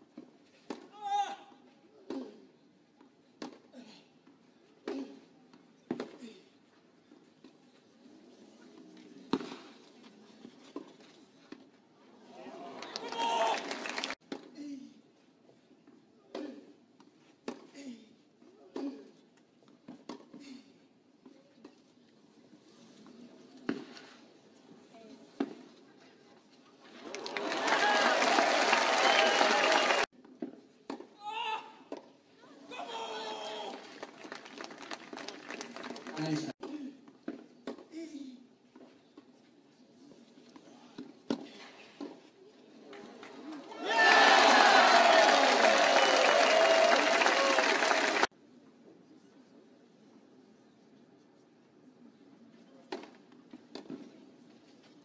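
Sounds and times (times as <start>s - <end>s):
crowd noise: 11.6s - 14.2s, 26.5s - 30.1s, 42.5s - 48.3s
crowd applauding and cheering: 12.5s - 14.2s, 27.0s - 30.1s, 33.7s - 36.4s, 43.8s - 48.3s.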